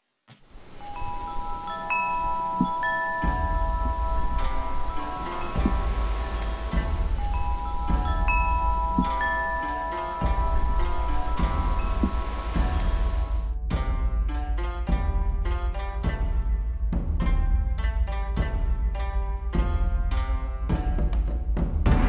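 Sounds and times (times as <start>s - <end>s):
metal chimes ringing: 0.6s - 13.5s.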